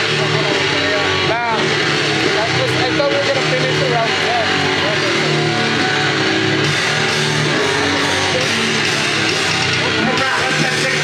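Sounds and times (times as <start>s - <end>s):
distorted live music: 0.0s - 11.0s
pulsing low bass: 0.0s - 11.0s.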